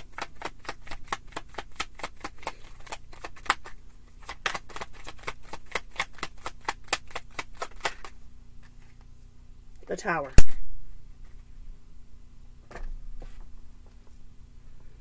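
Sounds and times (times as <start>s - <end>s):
cards being shuffled: 0.0s - 9.0s.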